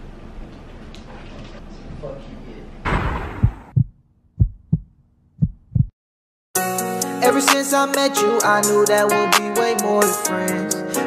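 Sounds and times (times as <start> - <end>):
heartbeat thumps: 2.9 - 6.0
r and b song: 6.6 - 11.0.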